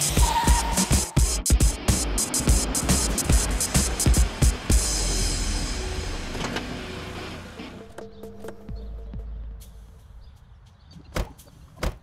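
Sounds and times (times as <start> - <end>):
soundtrack music: 0.0 - 10.2.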